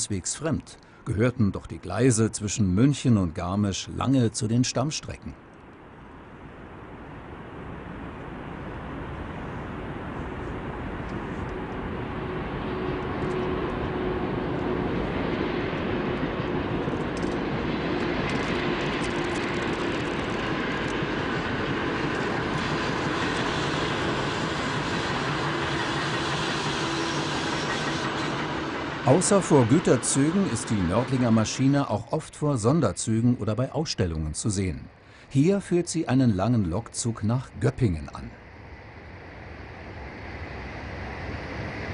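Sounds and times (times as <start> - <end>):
train wheels rolling on rails: 11.1 - 31.9.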